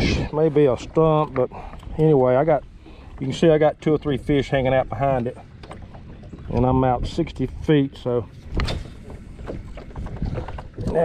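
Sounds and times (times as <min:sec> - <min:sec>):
wind rumble on microphone: 0:00.0 - 0:01.4, 0:05.9 - 0:11.0.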